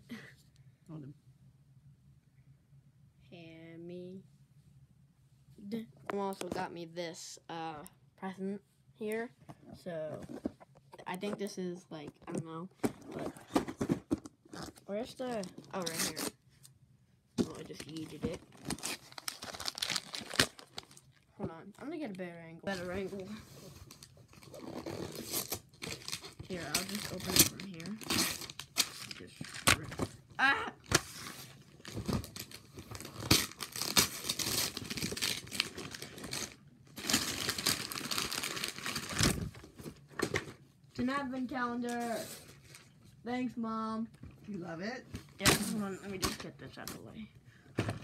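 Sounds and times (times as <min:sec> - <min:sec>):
wrapping paper crinkling and rustling: 0:17.5 - 0:21.3, 0:22.7 - 0:30.0, 0:30.8 - 0:40.0.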